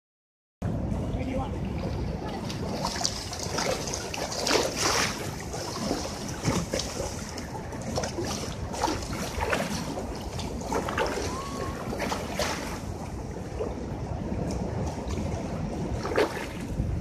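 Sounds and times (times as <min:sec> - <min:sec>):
wind rumble on microphone: 0:00.6 - 0:17.0
floodwater rushing and splashing: 0:00.8 - 0:17.0.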